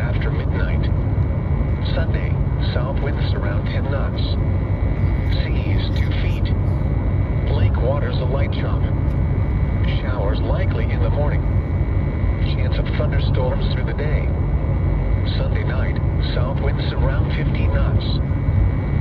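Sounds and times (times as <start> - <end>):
low rumbling noise: 0.0 - 19.0
synthesized voice speaking: 5.0 - 6.8.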